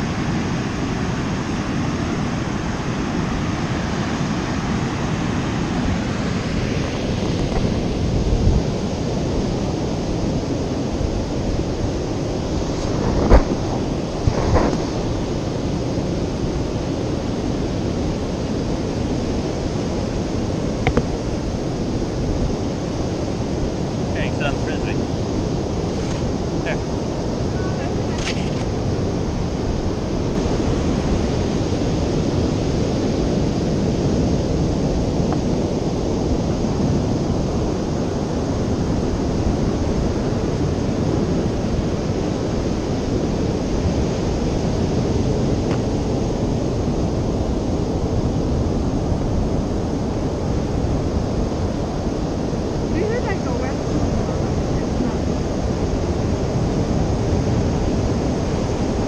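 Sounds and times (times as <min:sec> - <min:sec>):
surf breaking on beach: 0:00.0 - 0:59.0
wind buffeting microphone: 0:00.0 - 0:59.0.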